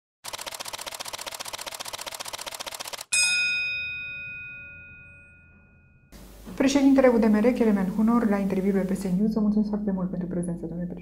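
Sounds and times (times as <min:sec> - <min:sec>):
fast mechanical ticking: 0:00.2 - 0:03.1
bright bell strike: 0:03.1 - 0:06.2.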